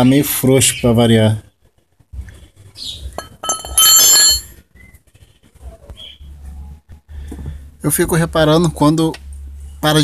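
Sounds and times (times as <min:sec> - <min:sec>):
metal striking metal ringing: 0:03.2 - 0:04.6.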